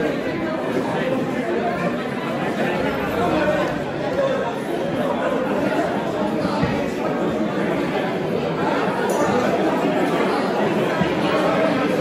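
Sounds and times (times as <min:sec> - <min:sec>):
crowd chatting: 0:00.0 - 0:12.0.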